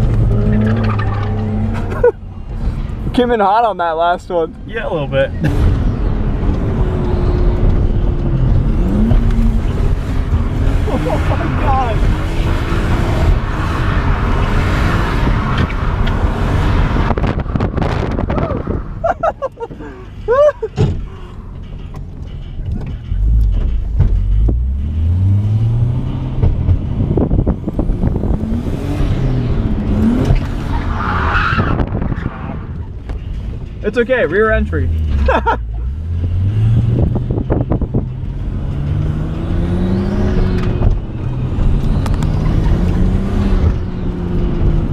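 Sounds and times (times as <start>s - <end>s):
car engine revving: 0.0s - 44.9s
tyres squealing and skidding: 30.0s - 33.0s.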